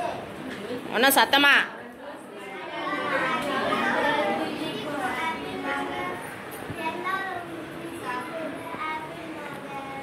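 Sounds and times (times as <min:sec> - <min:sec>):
girls talking: 0:01.7 - 0:10.0.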